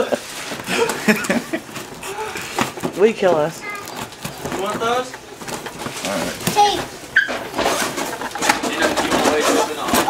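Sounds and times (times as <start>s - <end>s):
clicks and rustles: 3.6s - 10.0s.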